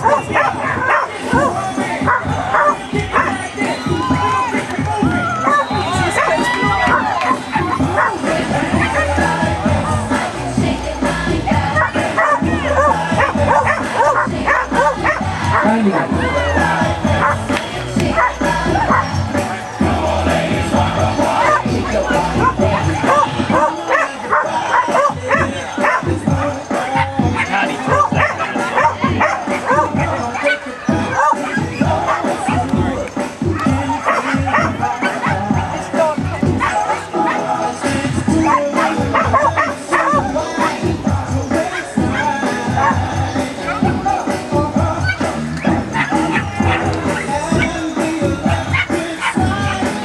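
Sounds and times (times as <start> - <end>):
dog barking and yipping: 0.0 - 3.9, 5.1 - 10.1, 11.6 - 17.5, 18.1 - 19.7, 21.3 - 32.8, 33.4 - 50.0
music from loudspeakers: 0.0 - 50.0.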